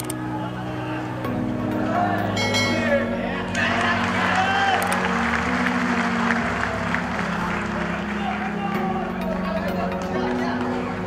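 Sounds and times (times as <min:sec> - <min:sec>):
music of sustained low chords: 0:00.0 - 0:11.0
stadium crowd applauding: 0:03.4 - 0:11.0.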